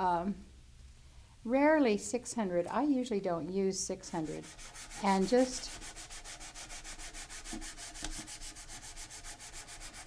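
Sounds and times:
sandpaper scratching on painted surface: 4.1s - 10.0s.

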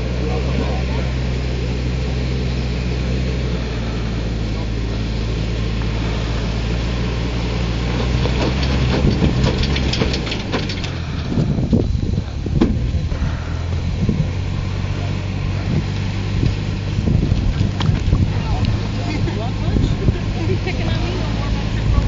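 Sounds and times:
truck engine at low revs: 0.0s - 22.0s
sharp clicks and knocks: 8.0s - 11.5s.

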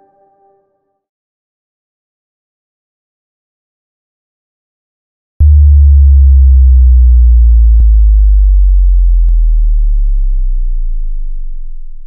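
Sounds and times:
deep synthesized bass boom: 5.4s - 12.0s.

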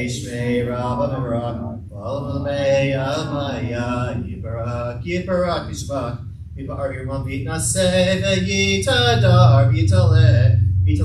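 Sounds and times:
man chanting a prayer: 0.0s - 11.0s.

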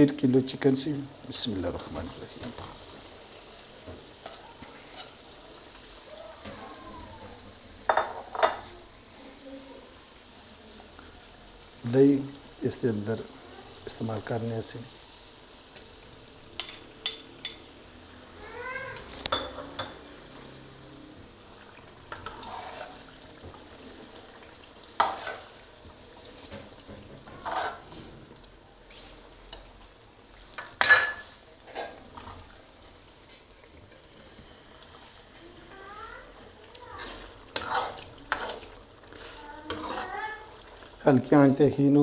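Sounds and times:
light sizzle: 0.0s - 42.0s
metal clang on pan: 19.3s - 20.0s, 30.6s - 31.9s
metal ladle scraping a pan: 22.1s - 23.2s, 25.0s - 25.6s, 27.2s - 28.0s, 30.7s - 32.4s, 36.9s - 40.6s.

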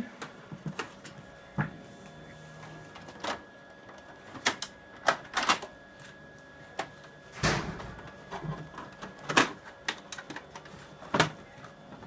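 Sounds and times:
plastic clicks of copier paper cassette: 4.4s - 5.7s.

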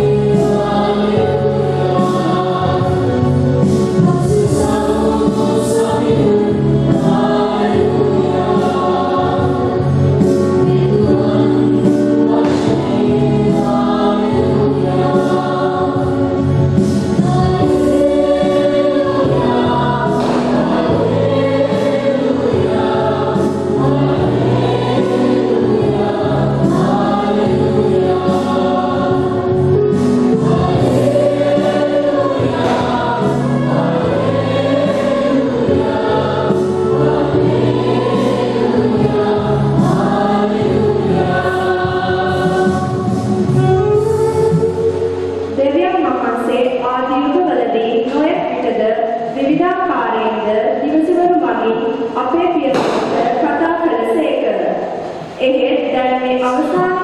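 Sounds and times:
instrumental accompaniment: 0.0s - 46.5s
choir singing a hymn: 0.0s - 57.0s.

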